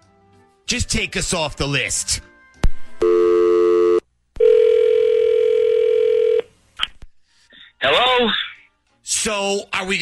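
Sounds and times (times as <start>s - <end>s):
telephone dial tone: 3.2s - 6.5s.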